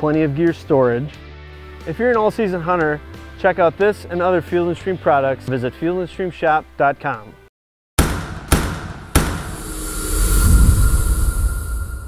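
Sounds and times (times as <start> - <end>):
sharp impact hits: 8.0 - 12.0
deep rumbling swell: 9.4 - 12.0
high steady tone: 9.4 - 12.0.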